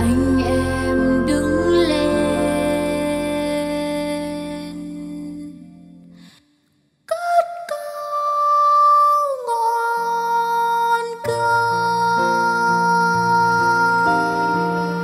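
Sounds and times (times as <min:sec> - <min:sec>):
song accompaniment: 0:00.0 - 0:06.3.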